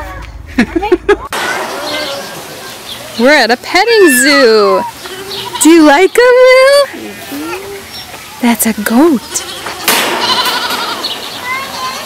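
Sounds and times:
young goat bleating: 0:04.1 - 0:05.9, 0:09.4 - 0:11.2.

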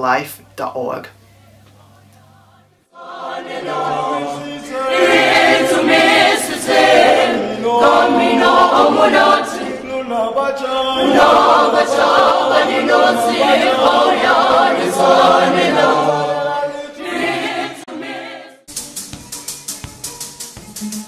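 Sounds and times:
choir singing in harmony: 0:02.8 - 0:18.7.

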